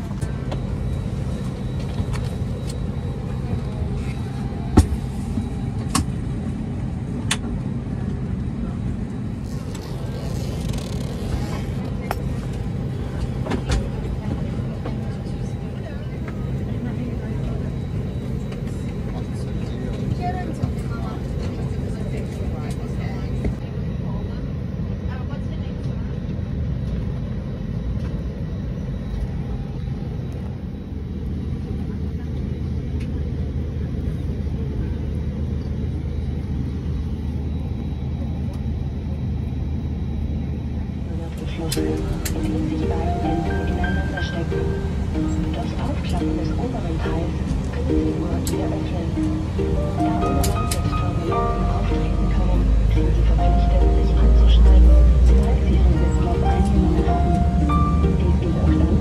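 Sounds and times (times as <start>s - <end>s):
airliner cabin hum: 0.0s - 59.0s.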